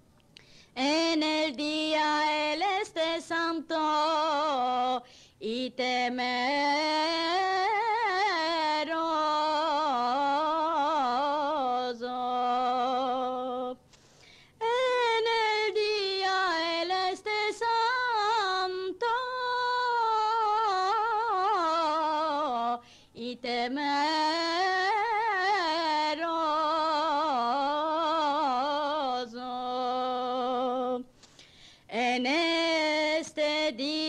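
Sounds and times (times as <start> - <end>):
woman singing unaccompanied: 0.8 - 13.8, 14.6 - 31.1, 31.9 - 34.0.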